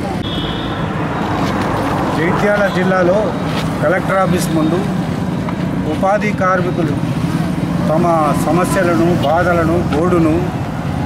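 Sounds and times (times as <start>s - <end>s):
traffic: 0.0s - 11.0s
high-pitched steady tone: 0.1s - 1.6s.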